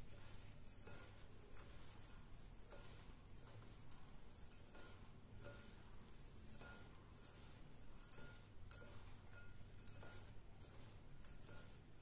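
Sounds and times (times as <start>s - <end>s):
hand mixing seeds rustling: 0.0s - 12.0s
seeds ticking against glass: 0.0s - 12.0s.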